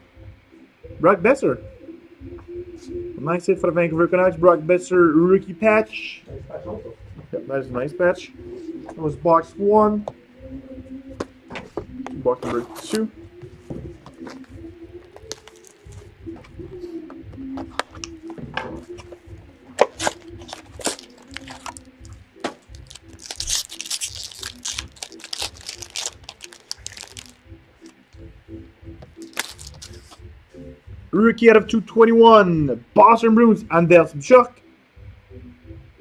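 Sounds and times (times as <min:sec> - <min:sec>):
faint background music: 0:00.0 - 0:36.0
plastic wrapping crinkling and tearing: 0:15.1 - 0:16.0, 0:19.8 - 0:28.0, 0:29.2 - 0:30.2.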